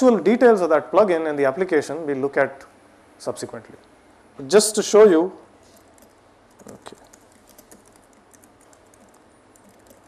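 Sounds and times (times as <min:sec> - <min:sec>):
faint typing on keyboard: 0:05.6 - 0:10.0.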